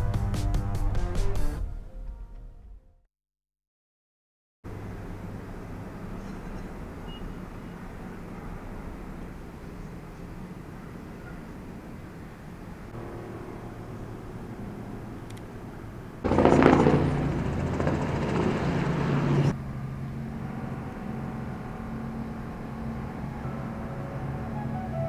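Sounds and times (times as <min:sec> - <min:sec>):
low outdoor hum: 0:04.7 - 0:25.0
helicopter rotor noise: 0:13.0 - 0:24.7.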